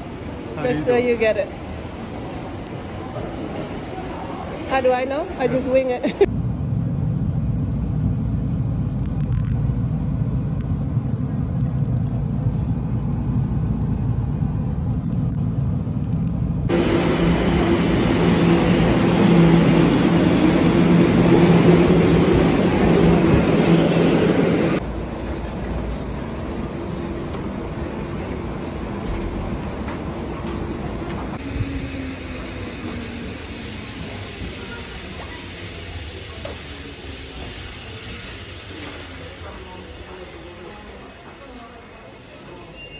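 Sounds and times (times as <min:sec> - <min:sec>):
train car rumble: 0:00.0 - 0:42.9
train motor hum: 0:07.7 - 0:42.6
station noise: 0:16.7 - 0:42.9.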